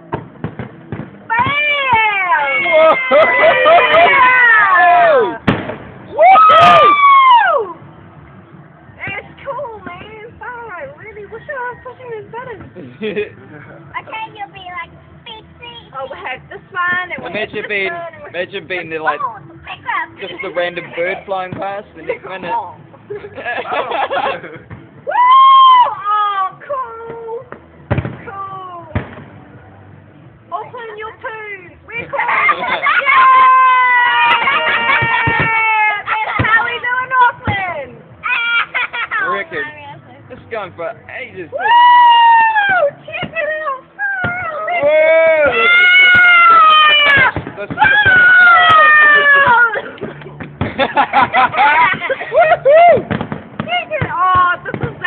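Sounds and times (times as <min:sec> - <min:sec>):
firework bangs: 0:00.0 - 0:02.6, 0:05.4 - 0:07.1, 0:27.0 - 0:28.3, 0:28.9 - 0:29.5, 0:32.8 - 0:37.8, 0:45.5 - 0:52.1, 0:52.8 - 0:55.0
onlookers crying out: 0:01.4 - 0:05.4, 0:06.1 - 0:07.8, 0:25.0 - 0:26.6, 0:32.2 - 0:36.4, 0:44.3 - 0:50.0
people whooping: 0:01.4 - 0:05.4, 0:06.1 - 0:07.8, 0:25.0 - 0:26.0, 0:32.5 - 0:36.1, 0:41.5 - 0:42.9, 0:44.8 - 0:49.7, 0:52.3 - 0:53.2.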